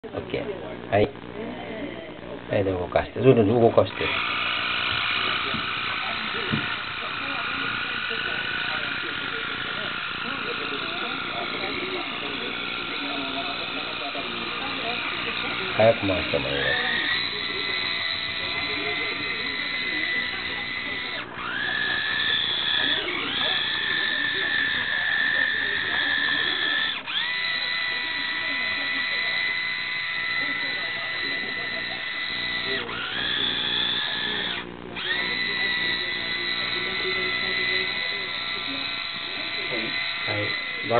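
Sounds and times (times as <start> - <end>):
toy car electric motor whine: 0.1 - 40.9.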